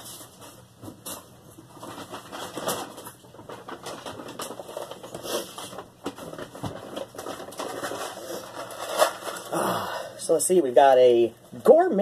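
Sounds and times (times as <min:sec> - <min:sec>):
food packages rustling: 0:00.0 - 0:10.0.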